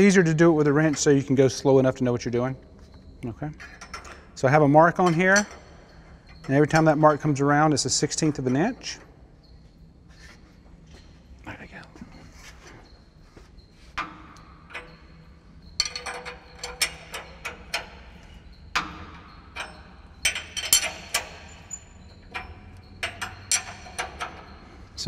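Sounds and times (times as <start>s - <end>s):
wrench clicking on metal bolt: 15.8s - 24.6s.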